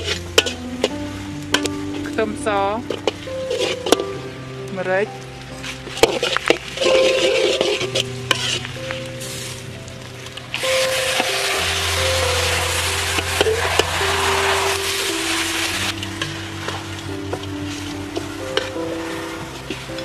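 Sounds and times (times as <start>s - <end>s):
metal spatula scraping wok: 0.0s - 4.3s, 5.6s - 20.0s
background music with held notes: 0.0s - 20.0s
food sizzling in hot oil: 0.0s - 20.0s.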